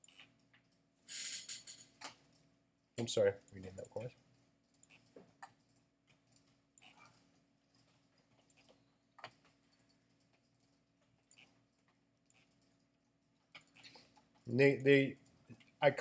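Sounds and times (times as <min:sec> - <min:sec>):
faint clicks and taps: 0:01.8 - 0:15.8.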